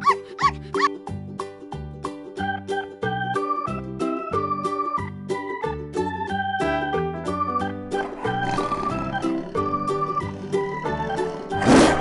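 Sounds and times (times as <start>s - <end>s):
zebra yelping barks: 0.0s - 1.0s, 8.0s - 12.0s
keyboard background music: 0.0s - 12.0s.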